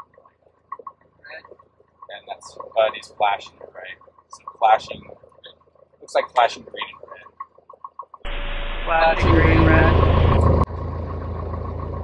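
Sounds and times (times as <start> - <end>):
aircraft engine running: 0.1 - 7.3, 8.3 - 12.0
intercom hiss and hum: 8.3 - 10.6.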